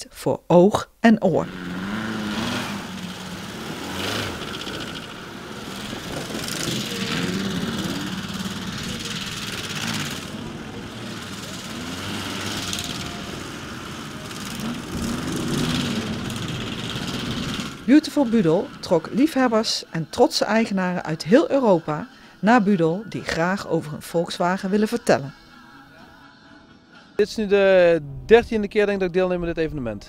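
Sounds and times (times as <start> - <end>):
engines revving: 1.4 - 28.6.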